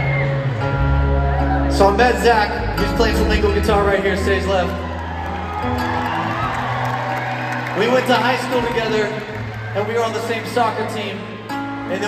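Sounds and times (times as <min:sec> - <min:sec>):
live band soft vamp: 0:00.0 - 0:10.2
crowd cheering: 0:00.0 - 0:12.0.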